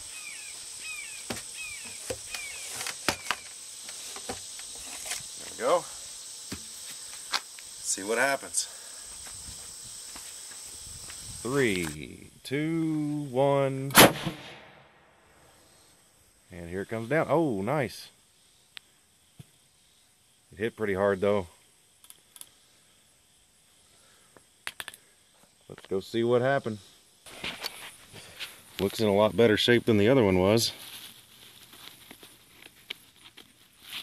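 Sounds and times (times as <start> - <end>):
high-pitched insect chirring: 0.0 - 12.2
faint steady hiss: 0.0 - 34.0
footfalls on grass: 1.2 - 5.7, 6.4 - 7.7
sharp clicks: 24.6 - 25.0.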